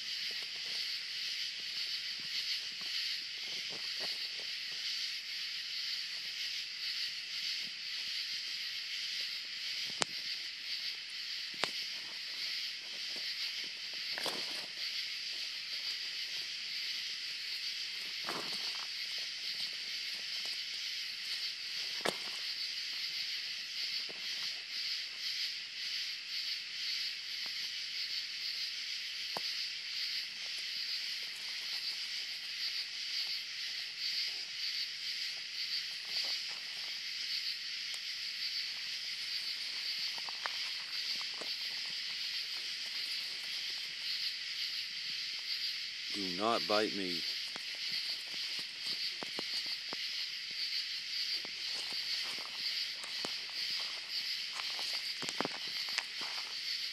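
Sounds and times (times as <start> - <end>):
animals scuffling on gravel: 0.0 - 5.1, 11.6 - 25.3, 29.4 - 45.3, 47.0 - 56.9
night insects chorus: 0.0 - 56.9.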